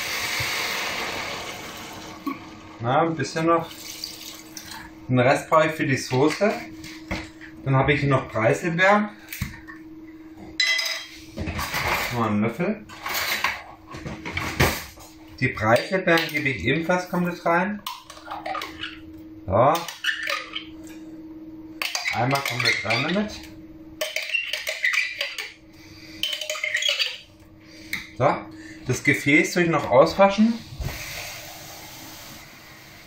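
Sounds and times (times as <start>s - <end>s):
dishes handling noise: 10.6s - 12.2s.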